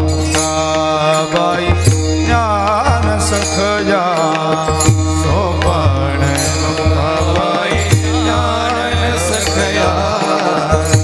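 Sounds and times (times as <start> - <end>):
person singing ornamented melody: 0.0 - 11.0.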